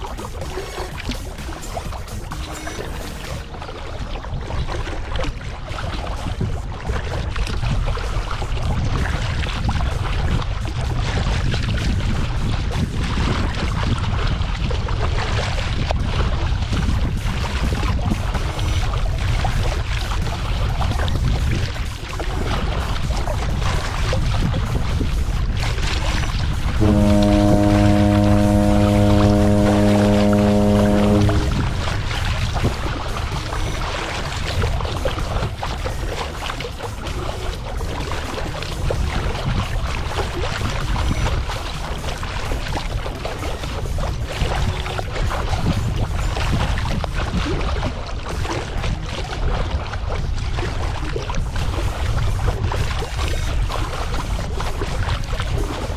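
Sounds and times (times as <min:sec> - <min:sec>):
steady low droning tone: 0:00.0 - 0:12.9, 0:22.2 - 0:44.1
water splashing along a hull: 0:00.0 - 0:55.9
wind rumble on microphone: 0:00.0 - 0:55.9.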